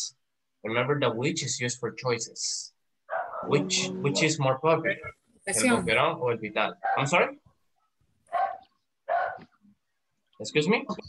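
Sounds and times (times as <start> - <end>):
dog barking: 3.1 - 3.5, 6.8 - 7.1, 8.3 - 9.6.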